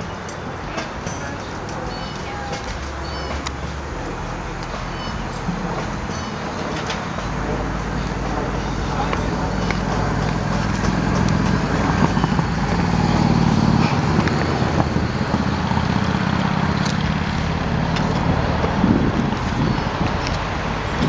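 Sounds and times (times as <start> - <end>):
road traffic hum: 0.0 - 21.0.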